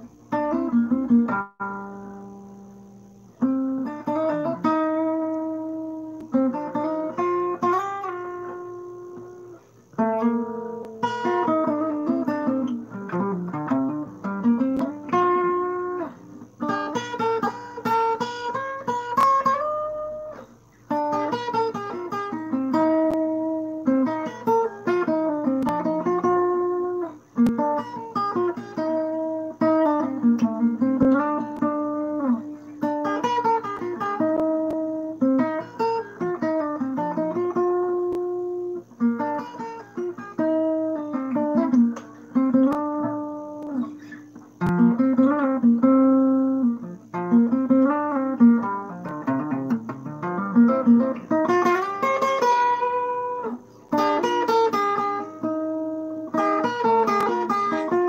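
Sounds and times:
acoustic guitar picking: 0.0s - 58.0s.

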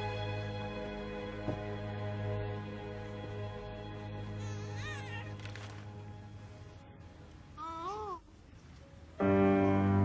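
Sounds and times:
wavering high-pitched cry: 4.4s - 5.4s.

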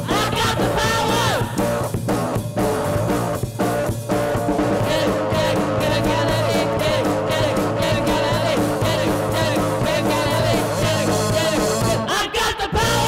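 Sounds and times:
person singing: 0.0s - 1.6s, 4.7s - 13.0s
rock band playing: 0.0s - 12.1s.

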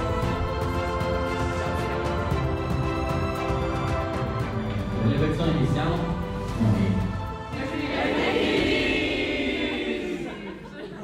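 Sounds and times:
crowd cheering: 7.6s - 11.0s.

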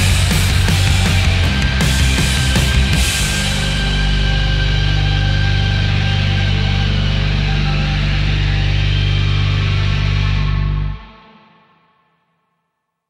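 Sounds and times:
rock band holding final chord: 0.0s - 11.5s.

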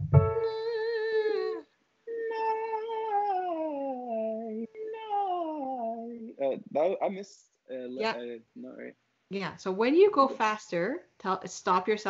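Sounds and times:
man singing high held note: 0.4s - 7.2s, 7.8s - 8.4s.

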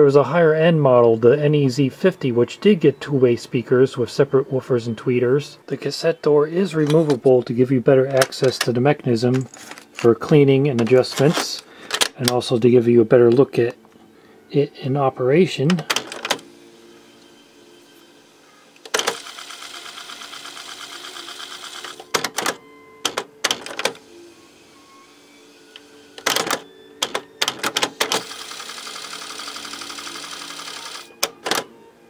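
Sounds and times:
cassette mechanism clunks and clicks: 8.1s - 12.4s, 15.7s - 16.4s, 22.0s - 24.0s, 25.8s - 28.3s, 31.2s - 31.7s
tape winding whir: 18.3s - 22.5s, 23.1s - 31.7s.

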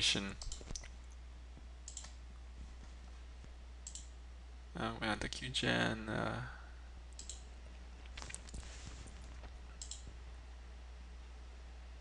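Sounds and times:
low electrical hum: 0.0s - 12.0s
faint computer mouse clicks: 1.9s - 2.2s, 3.8s - 4.1s, 7.2s - 7.5s, 9.8s - 10.1s.

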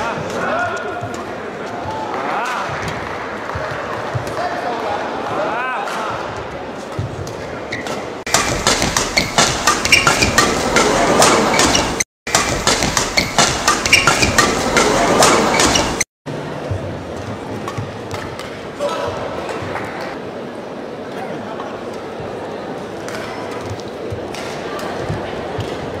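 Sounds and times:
shoe squeaks on court: 7.7s - 10.6s, 11.3s - 16.0s
shuttlecock hits: 8.3s - 16.0s
crowd murmur: 14.4s - 17.6s, 18.6s - 26.0s.

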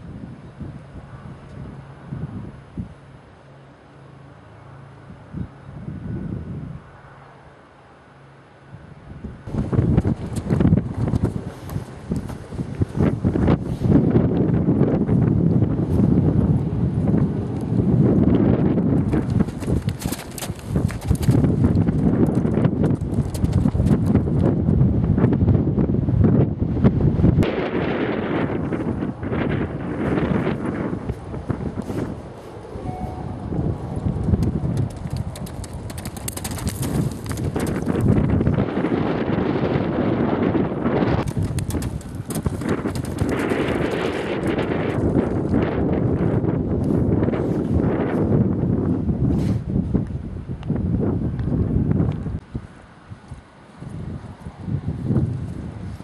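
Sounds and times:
wind buffeting microphone: 0.0s - 3.3s, 4.8s - 7.2s, 8.7s - 56.0s
horse hoofbeats on turf: 19.0s - 24.1s, 34.3s - 38.1s, 41.2s - 44.0s.

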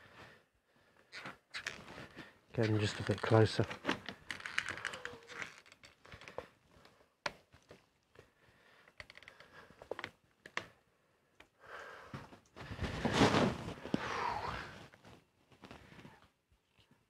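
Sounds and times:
rustling handling noise: 1.6s - 6.8s, 12.2s - 14.0s.

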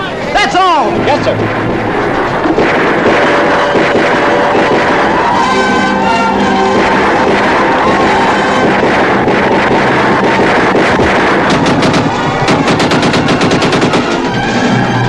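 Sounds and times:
film music: 0.0s - 15.0s
gatling gun firing: 2.4s - 14.3s.

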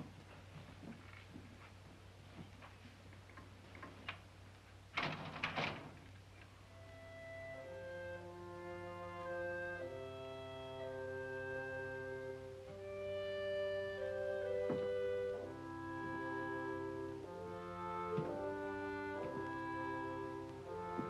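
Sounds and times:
orchestral strings playing chords: 6.7s - 21.0s.

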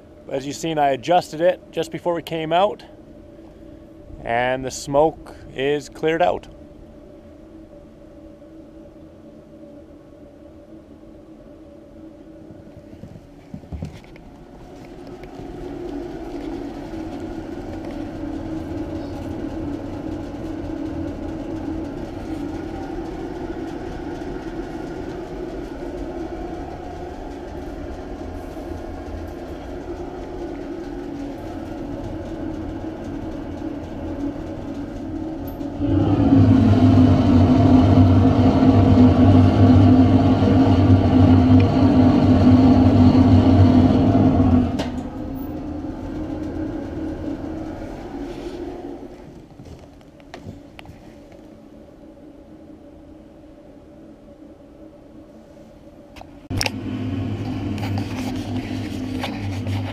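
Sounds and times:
furnace burning with rumbling roar: 0.0s - 59.9s
deep hum: 2.8s - 49.5s, 56.4s - 59.9s.

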